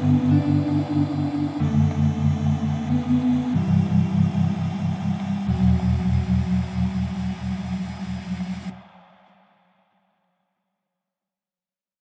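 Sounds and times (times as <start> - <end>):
electronic music pulsing bass: 0.0 - 9.0.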